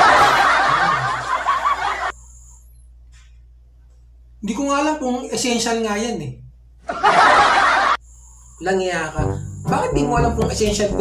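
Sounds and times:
burst of laughter: 0:00.0 - 0:02.1, 0:06.9 - 0:08.0.

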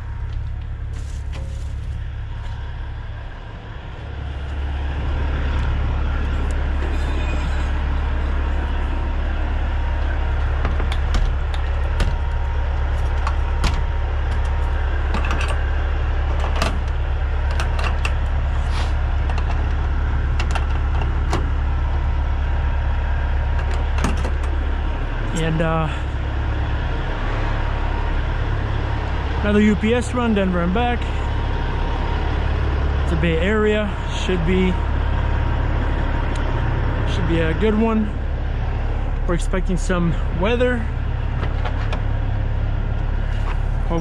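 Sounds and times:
vehicle engine idling: 0:00.0 - 0:44.0.

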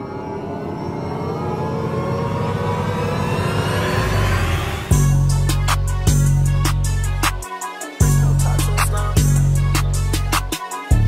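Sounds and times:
rising sweep effect: 0:00.0 - 0:07.4
music beat: 0:03.3 - 0:11.0.

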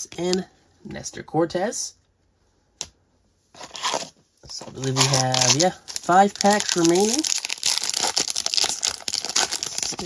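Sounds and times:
foil wrapper crinkling: 0:04.8 - 0:10.0.

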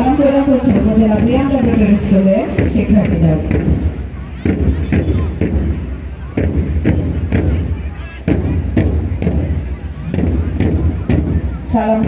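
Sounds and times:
marching drums: 0:00.0 - 0:12.0.

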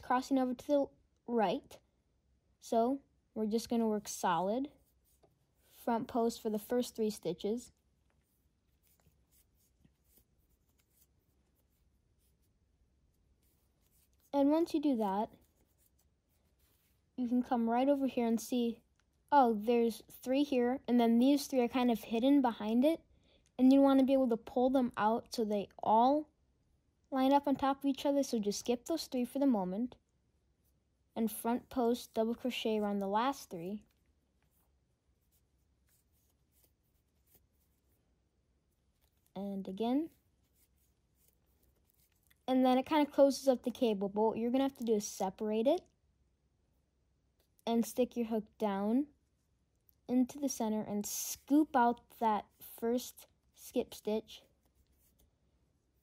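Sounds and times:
crochet hook scratching yarn: 0:02.6 - 0:25.8, 0:27.2 - 0:45.9, 0:47.4 - 0:56.0.

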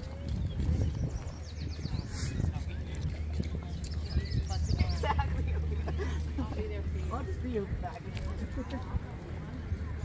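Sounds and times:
footsteps on concrete: 0:00.0 - 0:10.0
people's voices: 0:00.0 - 0:10.0.

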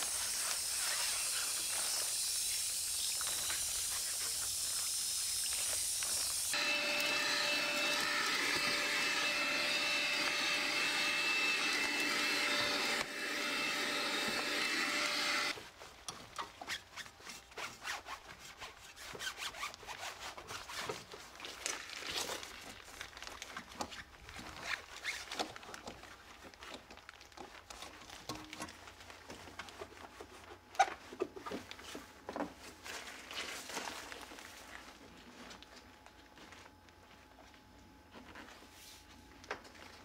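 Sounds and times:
hose spray nozzle hissing: 0:00.0 - 0:15.5
stick vacuum whining: 0:05.4 - 0:15.6.

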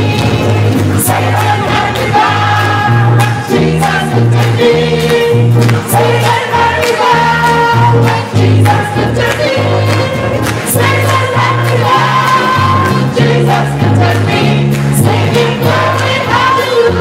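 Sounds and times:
bass line: 0:00.0 - 0:17.0
drum kit: 0:00.0 - 0:17.0
gospel choir singing: 0:00.0 - 0:17.0
piano: 0:00.0 - 0:17.0.

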